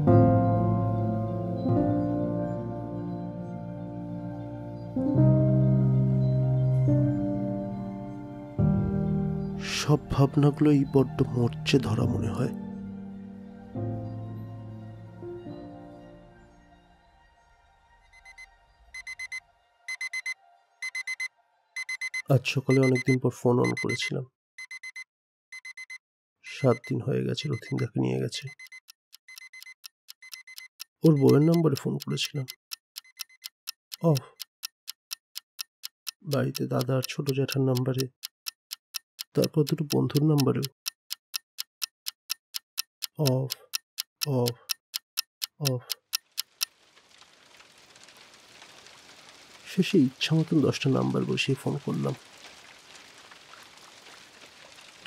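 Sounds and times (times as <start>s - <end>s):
electronic alarm beeping: 18.2s - 33.5s
clock ticking: 19.0s - 25.0s, 25.6s - 46.7s
rain hiss: 46.4s - 55.0s.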